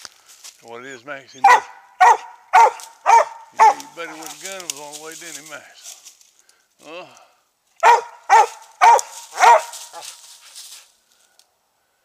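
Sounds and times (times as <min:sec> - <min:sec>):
dog barking: 0:01.4 - 0:03.9, 0:07.8 - 0:10.1.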